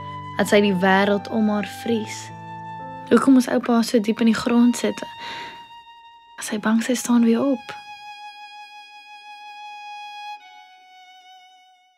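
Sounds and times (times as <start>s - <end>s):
long held violin note: 4.4s - 11.9s.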